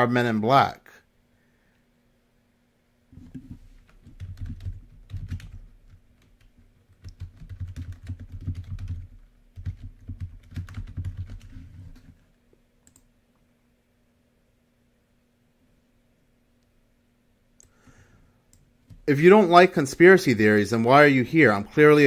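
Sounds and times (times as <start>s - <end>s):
typing on computer keyboard: 3.8s - 12.2s.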